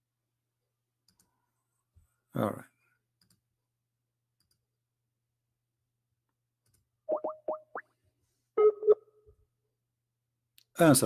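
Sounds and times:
short rising blips: 7.1 - 7.9
short beeps: 8.6 - 9.0.

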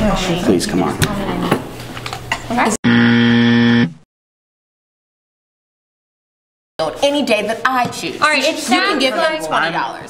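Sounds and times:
wrong answer buzzer: 2.8 - 4.0.

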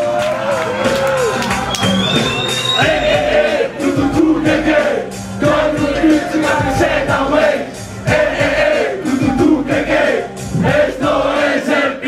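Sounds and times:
hip-hop beat: 0.0 - 12.0
people rapping and chanting: 2.8 - 12.0.

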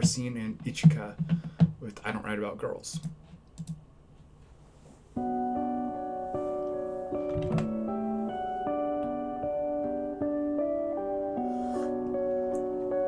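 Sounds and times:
guitar duet: 5.2 - 13.0.

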